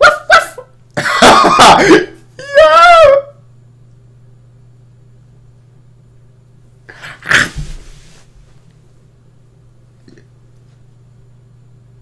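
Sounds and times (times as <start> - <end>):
man laughing: 0.0 - 3.3
faint low hum: 0.0 - 12.0.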